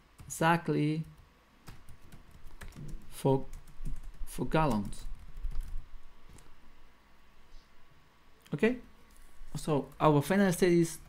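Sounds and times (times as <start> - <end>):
keyboard keystrokes: 1.7 - 5.8.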